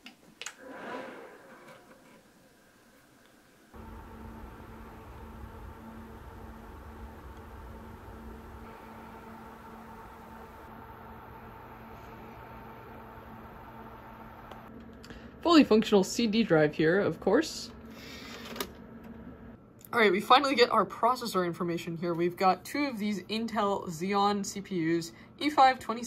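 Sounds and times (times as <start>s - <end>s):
computer fans whirring: 1.5s - 26.0s.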